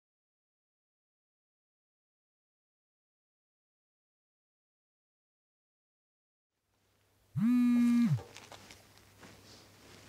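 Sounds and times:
phone vibrating on table: 0:07.4 - 0:08.3.

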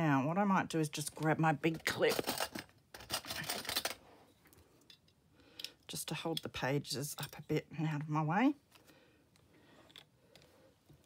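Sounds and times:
metal binder clip clattering: 0:01.9 - 0:04.0.

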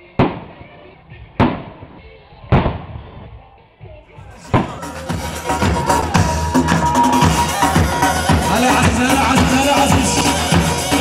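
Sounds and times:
firework bursts: 0:04.3 - 0:11.0.

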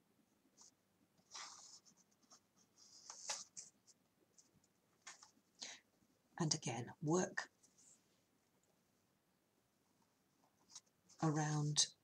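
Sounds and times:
hands rustling yarn: 0:00.5 - 0:05.4.

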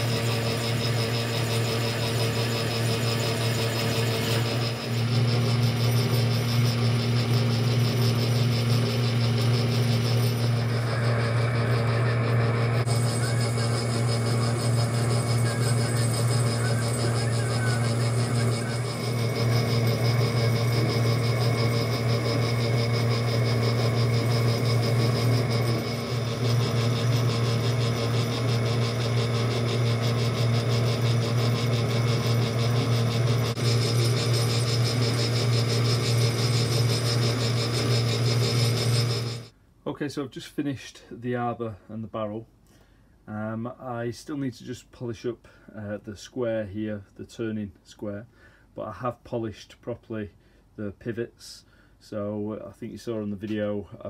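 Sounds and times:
filing spinning metal: 0:00.0 - 0:39.5
metal lathe motor hum: 0:00.0 - 0:39.5.

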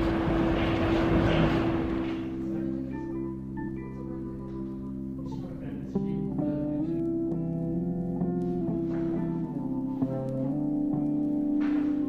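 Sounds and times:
city traffic rumble: 0:00.0 - 0:02.8.

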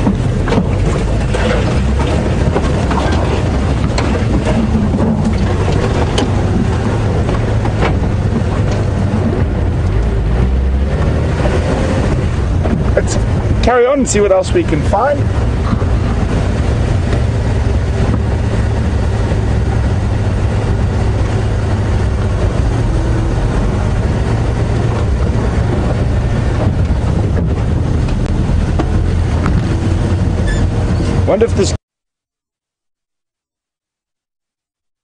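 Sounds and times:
road noise: 0:00.0 - 0:31.8
vehicle engine drone: 0:00.0 - 0:31.8.

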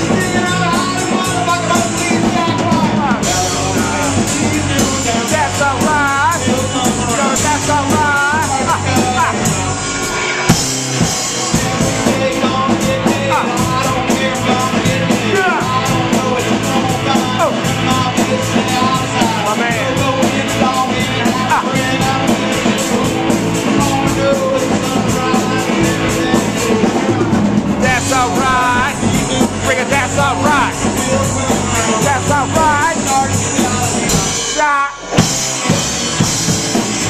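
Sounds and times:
drum kit playing: 0:00.0 - 0:37.0
electric guitar: 0:00.0 - 0:37.0
person singing: 0:00.0 - 0:37.0.

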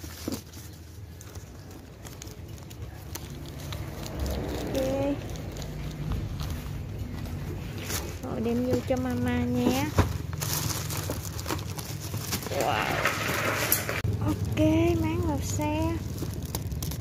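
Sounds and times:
low background rumble: 0:00.0 - 0:17.0
plastic bag rustling: 0:00.0 - 0:17.0.

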